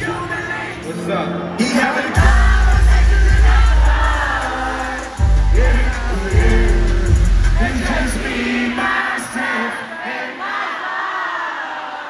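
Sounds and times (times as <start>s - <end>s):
crowd screaming and cheering: 0.0s - 12.0s
music with heavy bass: 1.6s - 8.8s.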